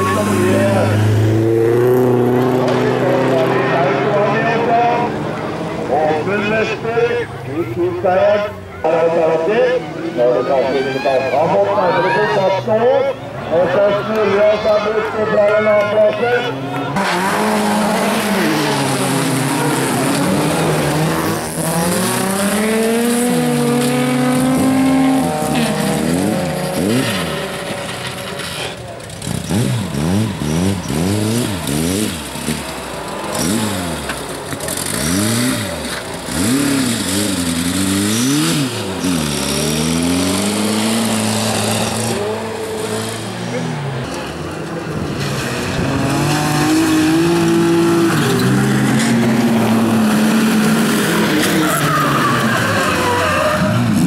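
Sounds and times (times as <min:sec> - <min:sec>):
car engines revving hard: 0:00.0 - 0:54.0
tyres sliding on gravel: 0:16.9 - 0:54.0.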